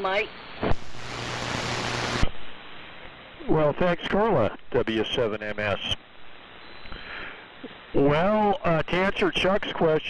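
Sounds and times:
radio static hiss: 0.0s - 10.0s
steady low hum: 0.0s - 10.0s.

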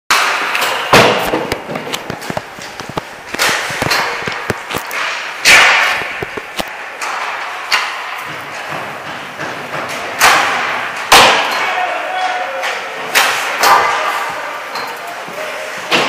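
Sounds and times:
hockey sticks hitting pucks: 0.1s - 16.0s
pucks striking boards: 0.1s - 16.0s.

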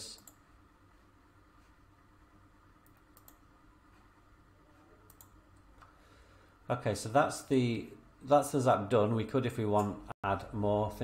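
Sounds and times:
computer mouse clicks: 2.8s - 4.0s, 5.0s - 6.0s.

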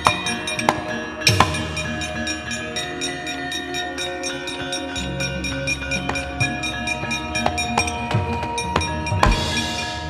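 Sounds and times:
gamelan ensemble playing: 0.0s - 10.0s.

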